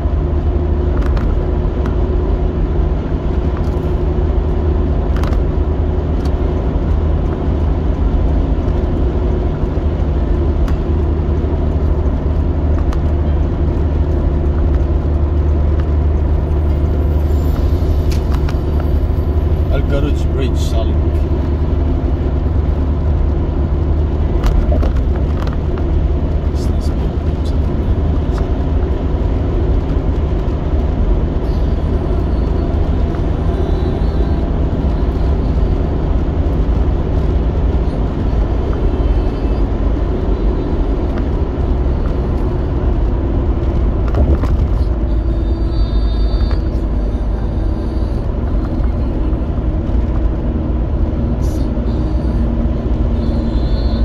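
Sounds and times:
car cabin road and engine rumble: 0:00.0 - 0:54.0.

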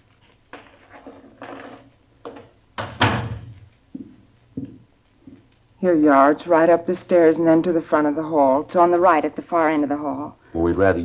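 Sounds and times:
door swinging shut with thud: 0:02.8 - 0:03.6.

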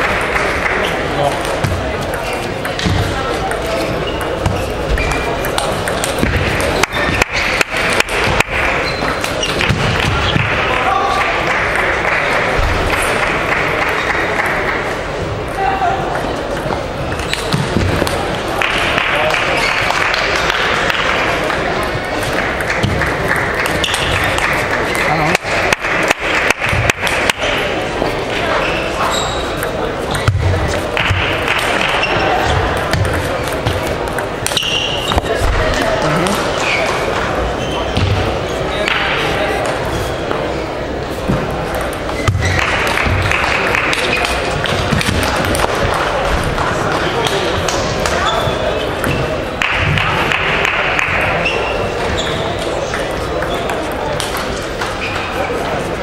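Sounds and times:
busy hall background noise: 0:00.0 - 0:56.0.

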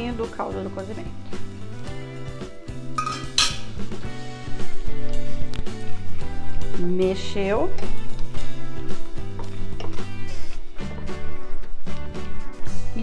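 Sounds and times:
background music: 0:00.0 - 0:13.0
metal ladle clinking on pot: 0:03.0 - 0:03.8.

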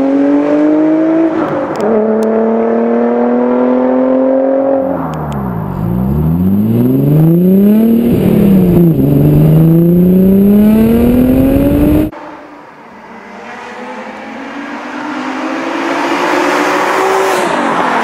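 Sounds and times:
car engine accelerating hard: 0:00.0 - 0:12.2.

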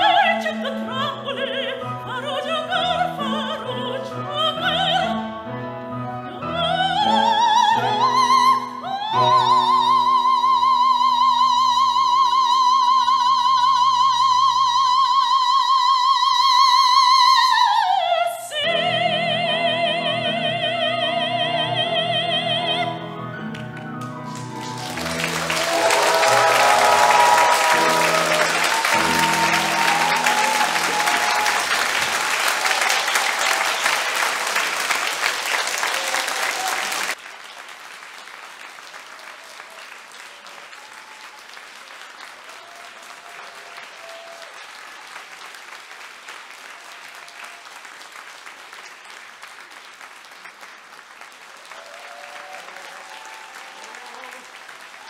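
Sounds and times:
piano chords: 0:00.0 - 0:14.6, 0:18.6 - 0:34.6
audience applause: 0:23.5 - 0:55.0.

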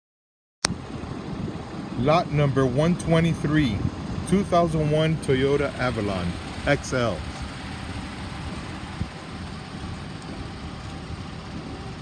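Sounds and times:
car engine idling: 0:00.7 - 0:12.0.

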